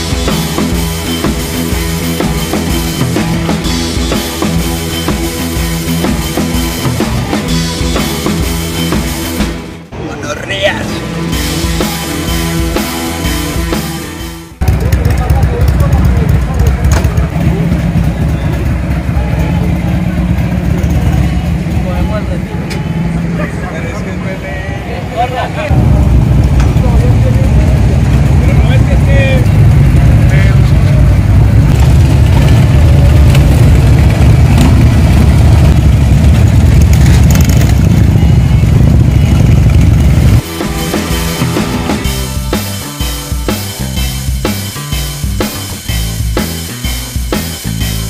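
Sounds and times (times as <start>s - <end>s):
music with drum beat: 0.0s - 9.9s, 11.0s - 19.5s, 37.4s - 48.0s
motorcycle engines running: 0.0s - 48.0s
voices: 14.6s - 34.2s.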